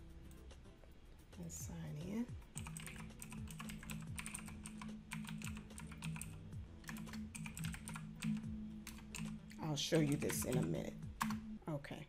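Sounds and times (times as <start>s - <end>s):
steady low hum: 0.0s - 12.0s
computer keyboard typing: 2.5s - 11.4s.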